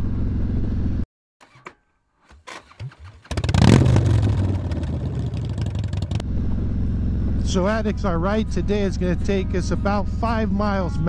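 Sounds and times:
motorcycle engine starting up: 0:01.4 - 0:07.5
motorcycle engine running: 0:02.7 - 0:10.9.

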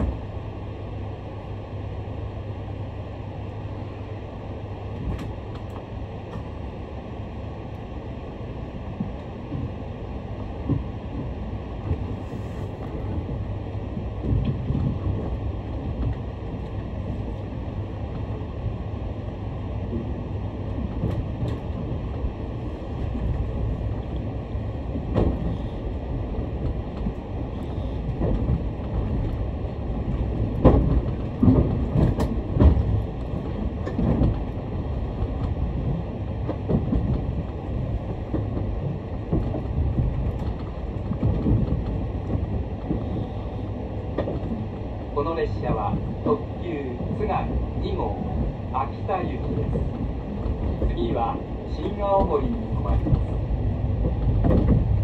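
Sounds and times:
train wheels rumbling: 0:00.0 - 0:55.0
wheels clacking on track: 0:19.8 - 0:43.4, 0:44.1 - 0:55.0.

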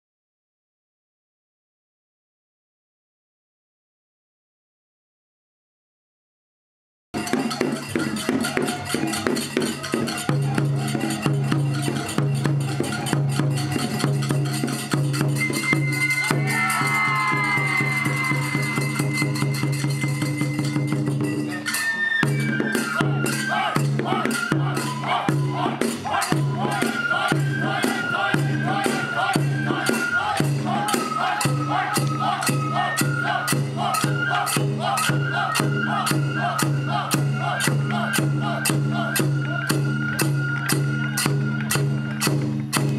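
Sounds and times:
taiko drum beat: 0:07.2 - 0:21.5, 0:22.4 - 0:42.9
jingling percussion: 0:07.2 - 0:42.9.

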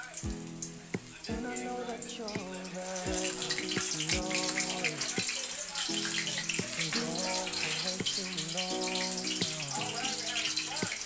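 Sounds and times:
oil sizzling in a wok: 0:00.0 - 0:11.0
song playing: 0:00.0 - 0:11.0.

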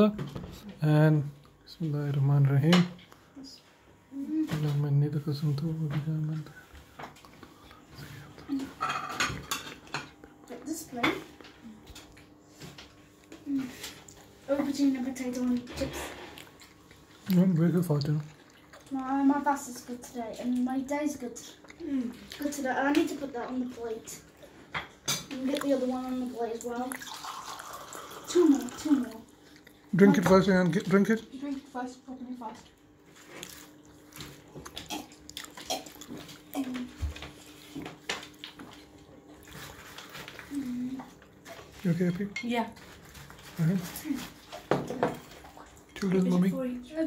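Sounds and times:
juice pouring into a glass: 0:26.9 - 0:29.2.

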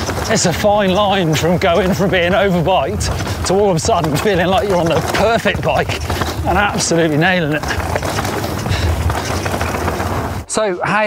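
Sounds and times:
bike tyres rolling on dirt: 0:00.0 - 0:10.7.

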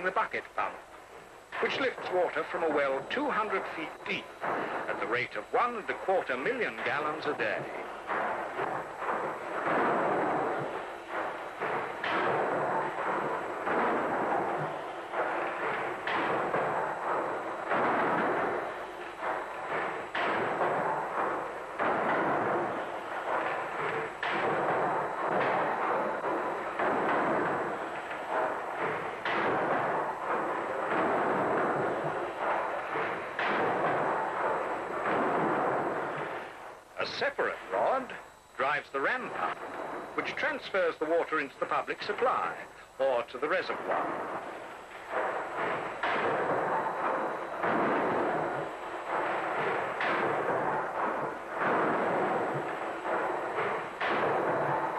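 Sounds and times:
steam engine mechanical rush: 0:00.0 - 0:54.9.

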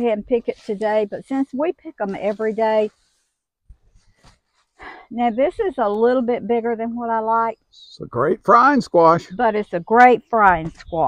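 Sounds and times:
faint rustling: 0:00.0 - 0:05.0.

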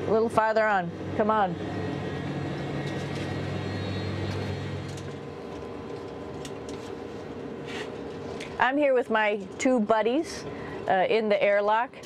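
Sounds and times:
ventilation fans humming: 0:00.0 - 0:12.0.

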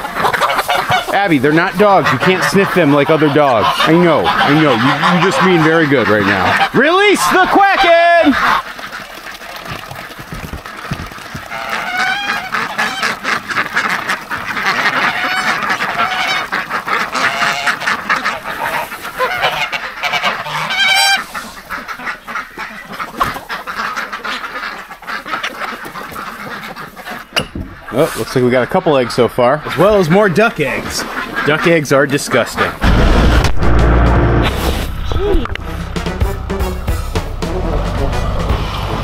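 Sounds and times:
ducks quacking: 0:00.0 - 0:39.0
geese honking: 0:00.0 - 0:39.0.

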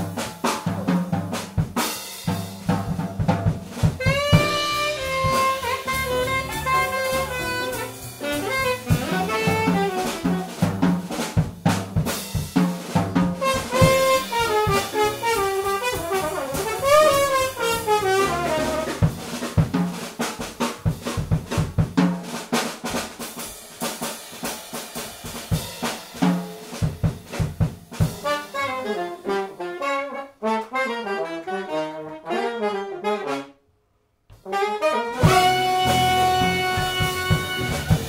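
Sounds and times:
piano: 0:00.0 - 0:20.2, 0:27.5 - 0:33.3, 0:35.1 - 0:38.0
drum kit hits: 0:00.0 - 0:28.6, 0:35.2 - 0:38.0
trombone: 0:03.7 - 0:10.9, 0:12.8 - 0:19.6, 0:28.0 - 0:33.6, 0:34.4 - 0:38.0
upright bass: 0:03.9 - 0:10.8, 0:16.0 - 0:19.1, 0:35.2 - 0:38.0
alto saxophone: 0:04.0 - 0:10.7, 0:13.4 - 0:19.1, 0:28.2 - 0:33.6, 0:34.4 - 0:38.0.

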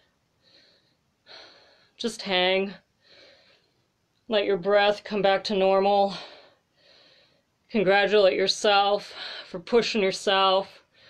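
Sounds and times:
man breathing hard: 0:00.4 - 0:02.0, 0:06.2 - 0:07.5.

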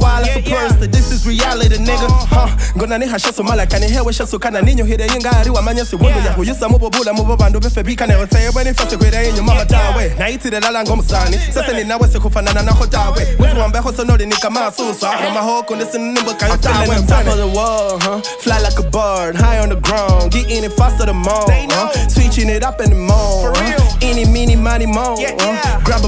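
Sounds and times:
deep sliding bass notes: 0:00.0 - 0:14.2, 0:16.5 - 0:26.0
rapping over a beat: 0:00.0 - 0:26.0.

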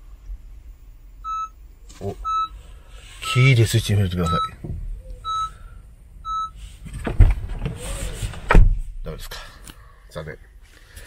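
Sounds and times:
short electronic warning beep: 0:04.2 - 0:04.6, 0:05.2 - 0:05.6
loud thump: 0:06.9 - 0:09.1.

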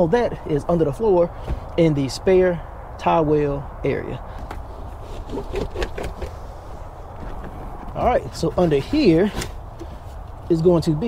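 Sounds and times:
rubber liner scraping and knocking: 0:05.0 - 0:06.4.

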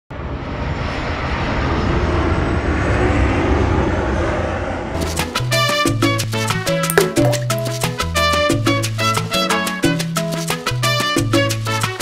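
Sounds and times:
salsa music with brass: 0:08.2 - 0:12.0.

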